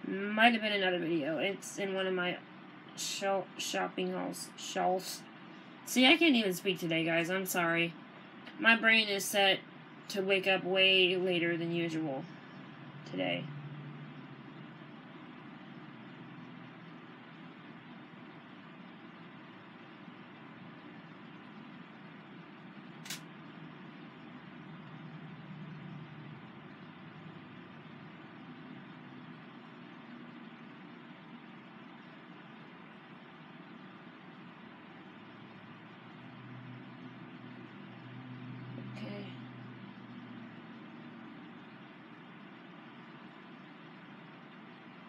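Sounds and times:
low background noise: 0.0 - 45.0
sharp click: 23.0 - 23.3.

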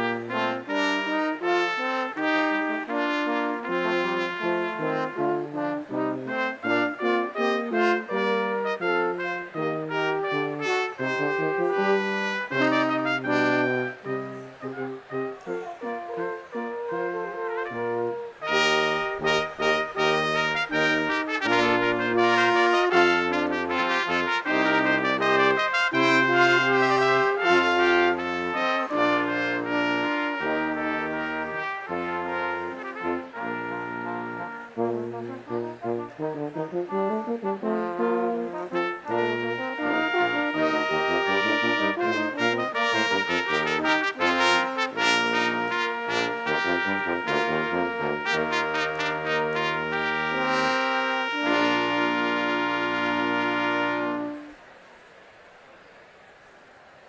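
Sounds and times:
brass ensemble playing: 0.0 - 54.7.

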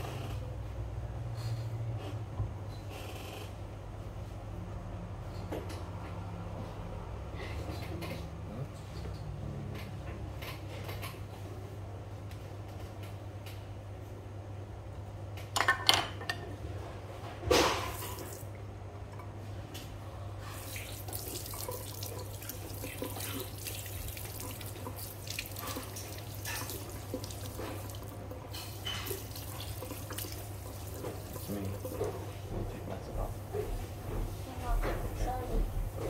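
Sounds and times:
water spraying from sink sprayer: 17.6 - 18.4, 20.4 - 36.0.

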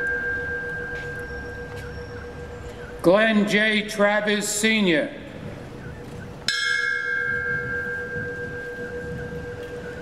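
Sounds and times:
bell ringing: 0.0 - 2.4, 6.5 - 10.0.

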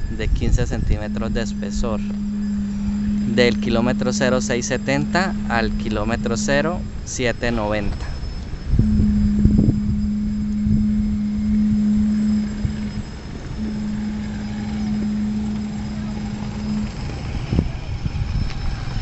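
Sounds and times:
construction machinery engines droning: 0.0 - 19.0
hum: 0.0 - 19.0
low rumble: 0.0 - 19.0.

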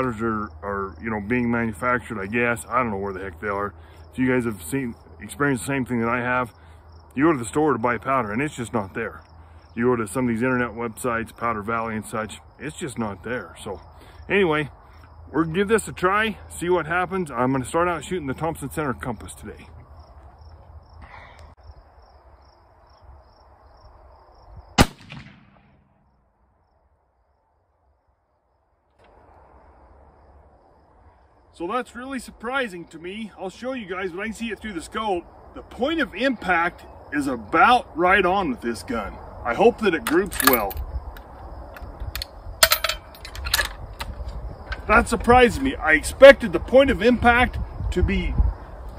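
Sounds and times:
rifle shot with echo: 24.8 - 26.0
rifle bolt metallic clicks: 40.0 - 40.8.

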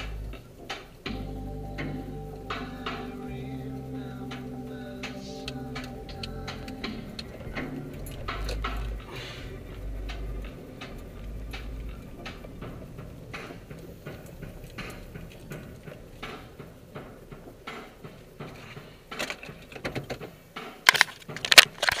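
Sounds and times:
music from car stereo: 1.1 - 9.2
steady light ticking: 1.1 - 17.7.

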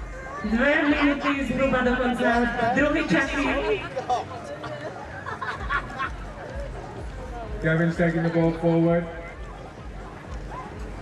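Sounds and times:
faint crowd voices: 0.0 - 11.0.

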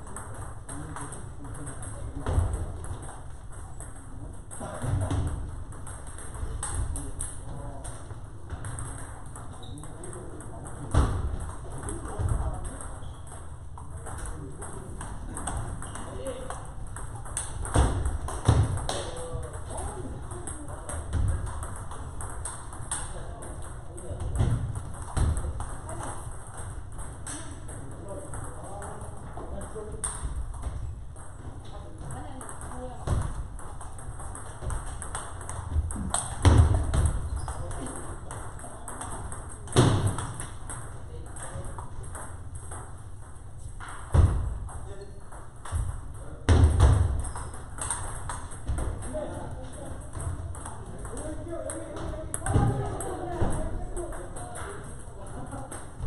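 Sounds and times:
table tennis balls clicking: 0.0 - 56.0.

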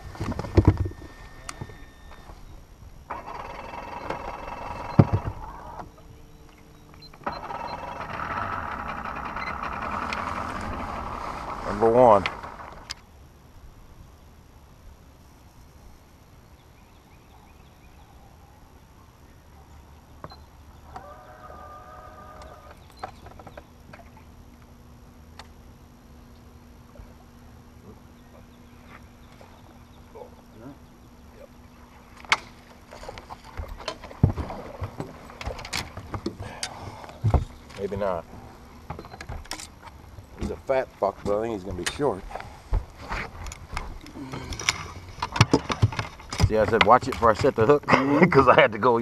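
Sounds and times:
low motor hum: 0.0 - 13.2, 19.2 - 47.8
gear clicks and knocks: 43.4 - 47.8.

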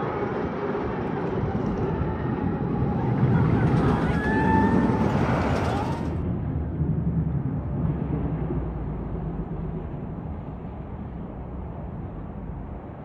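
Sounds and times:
distant roller coaster rumble: 0.0 - 13.0.

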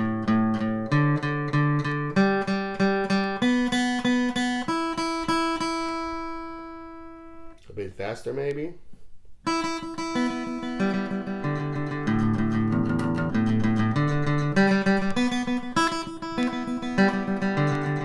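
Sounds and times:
acoustic guitar flatpicked: 0.0 - 7.6, 9.4 - 18.0.

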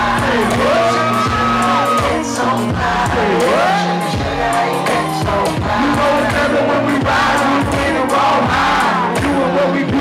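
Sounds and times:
live hip-hop music over pa: 0.0 - 10.0
steady bass: 0.0 - 10.0
sung vocal line: 0.0 - 10.0.

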